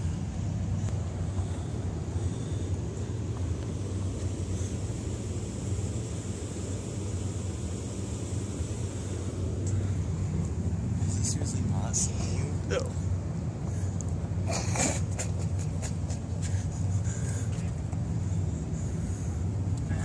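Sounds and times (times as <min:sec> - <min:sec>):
low outdoor rumble: 0:00.0 - 0:20.0.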